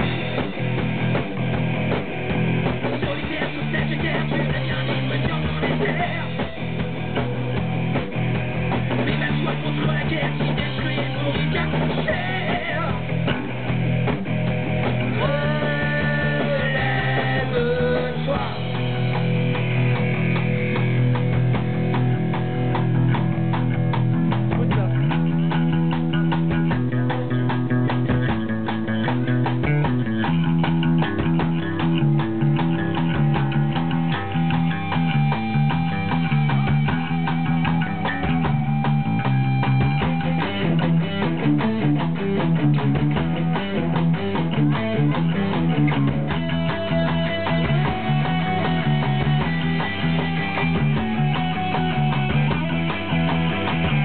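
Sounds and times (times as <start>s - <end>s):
distorted electric guitar: 0.0s - 54.0s
drums: 0.0s - 54.0s
repeating bass guitar line: 0.0s - 54.0s.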